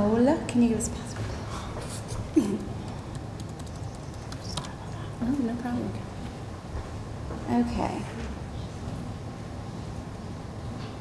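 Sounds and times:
laptop keyboard typing clicks: 2.6 - 4.8.

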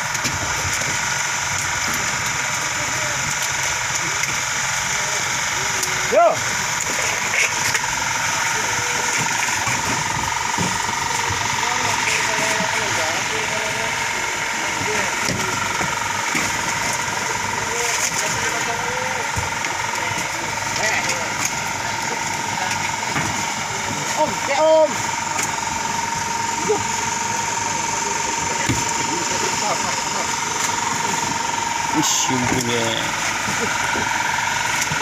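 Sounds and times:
engine idling: 0.0 - 35.0
indistinct voices talking: 2.1 - 35.0.

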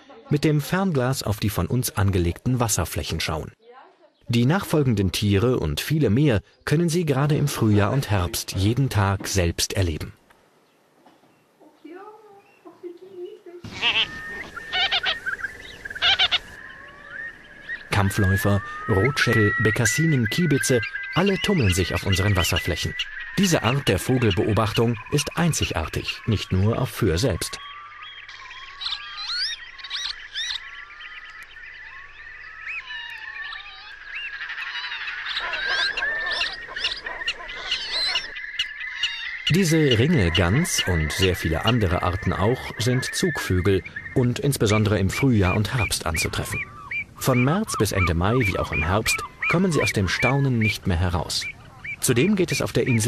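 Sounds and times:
wading birds bleating calls: 13.6 - 26.2, 32.5 - 53.0.

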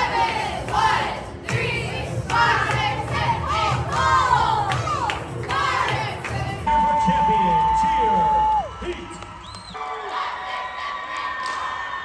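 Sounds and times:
high-pitched whoop: 6.7 - 10.2
crowd cheering and shouting: 6.7 - 12.0.

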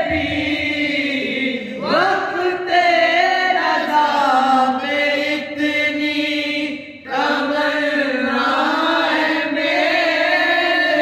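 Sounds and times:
group of men singing: 0.0 - 11.0.

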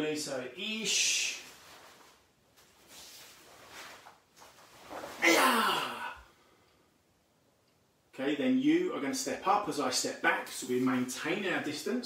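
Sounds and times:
cloth swishing and rustling: 1.2 - 5.5.

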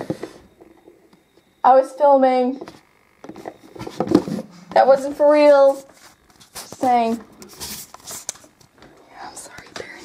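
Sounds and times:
soft whispering: 9.0 - 10.0.

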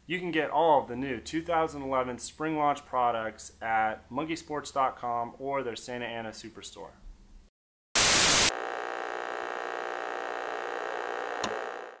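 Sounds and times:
sharp crackle: 8.0 - 8.6
burst of static: 8.0 - 12.0
electrical hum: 8.0 - 12.0.

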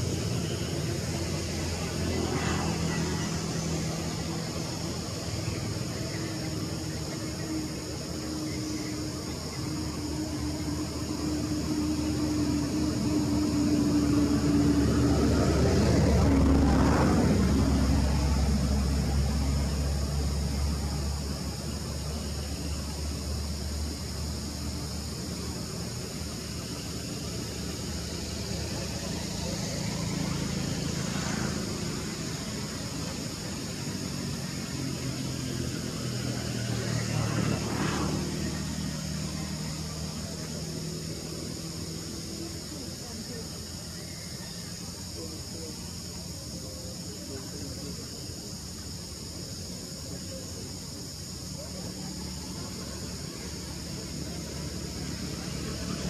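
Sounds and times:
low engine hum: 0.0 - 56.0
vehicles passing by: 0.0 - 56.0.

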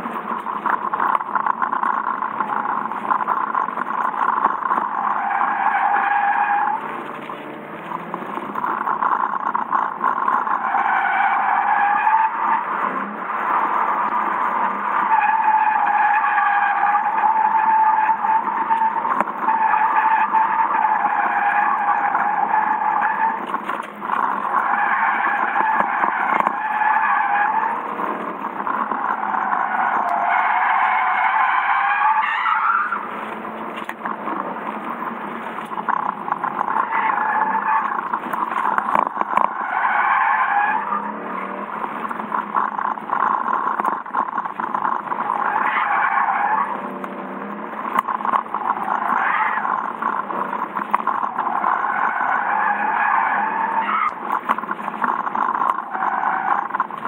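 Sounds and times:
car tyres squealing: 0.0 - 57.0.

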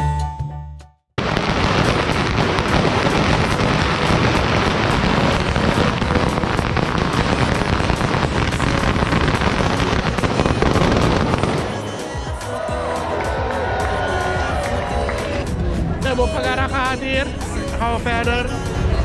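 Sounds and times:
firecrackers crackling: 1.2 - 12.2.

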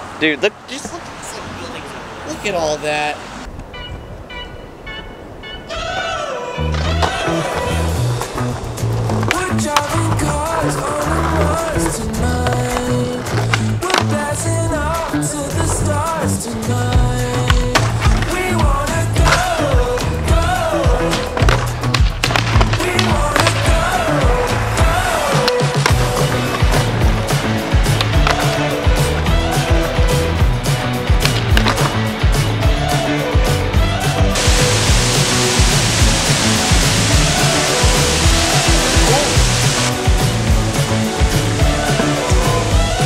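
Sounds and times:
skateboard wheels rolling on concrete: 5.8 - 43.0
background music with bass line: 6.6 - 43.0
skateboard pops and landings: 21.1 - 23.8, 31.2 - 32.0
loud hiss: 34.4 - 43.0.

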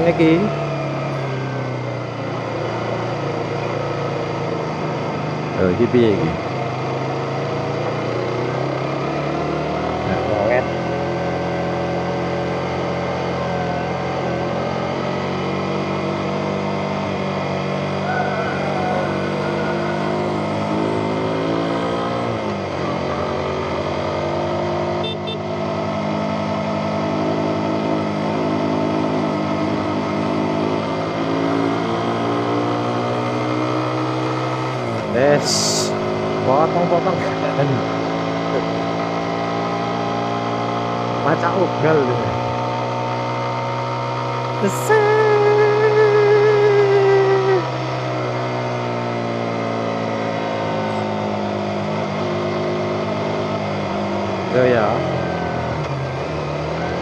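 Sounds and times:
motorcycle engine running: 0.0 - 57.0.

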